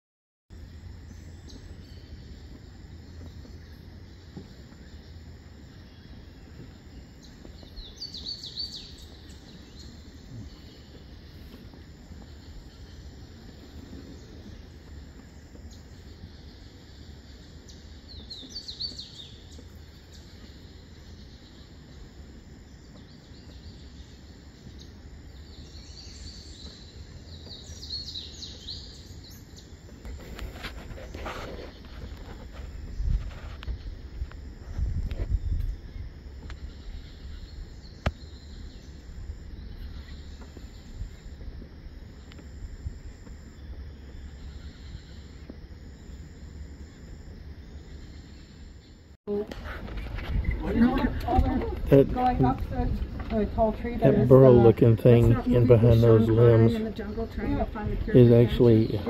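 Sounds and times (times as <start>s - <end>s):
steady low rumble: 0.5s - 59.0s
birds chirping: 1.0s - 34.4s, 35.2s - 59.0s.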